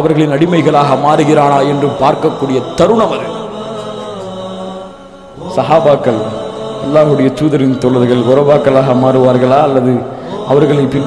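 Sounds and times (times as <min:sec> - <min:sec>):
man chanting through a microphone: 0:00.0 - 0:11.0.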